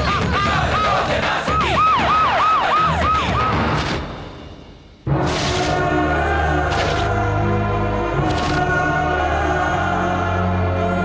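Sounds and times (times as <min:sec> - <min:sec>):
siren wailing and yelping: 0:00.0 - 0:03.8.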